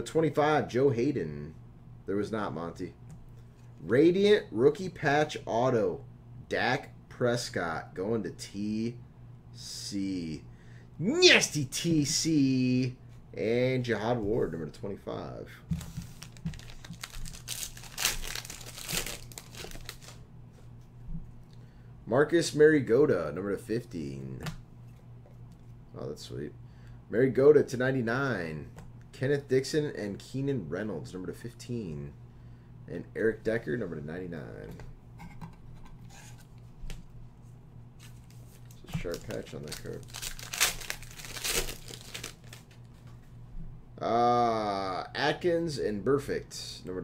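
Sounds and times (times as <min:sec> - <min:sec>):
foil wrapper crinkling: 0:15.8 - 0:20.2, 0:38.0 - 0:42.8.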